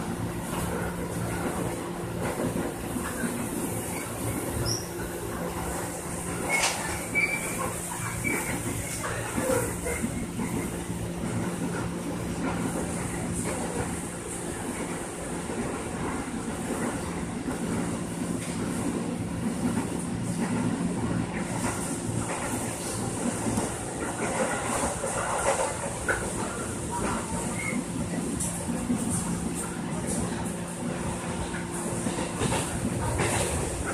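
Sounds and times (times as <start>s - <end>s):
train wheels rumbling on rails: 0.0s - 33.9s.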